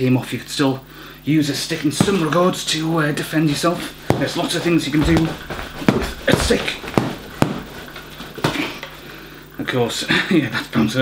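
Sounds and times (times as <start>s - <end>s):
wooden flail knocks: 3.8s - 8.6s.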